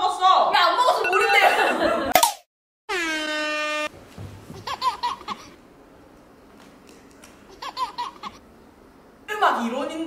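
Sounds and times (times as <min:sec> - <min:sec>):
air horn sound effect: 0:02.9 - 0:03.9.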